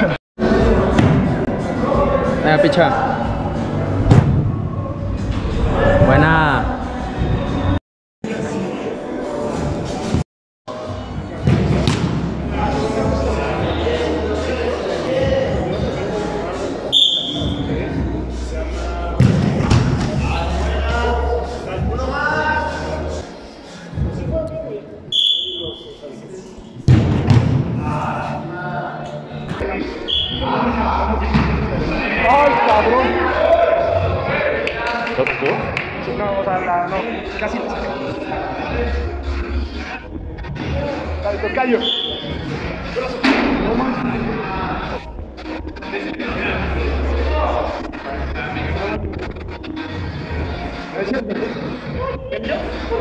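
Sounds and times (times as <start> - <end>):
players shouting and chattering: 0.0 - 53.0
soccer ball struck hard: 11.4 - 12.2, 26.9 - 27.8
short high whistle blasts: 16.9 - 17.6, 25.1 - 25.9.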